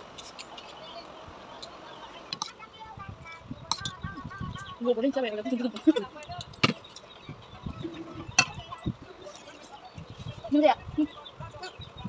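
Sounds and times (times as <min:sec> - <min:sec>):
woman speaking: 0:04.8 - 0:06.1.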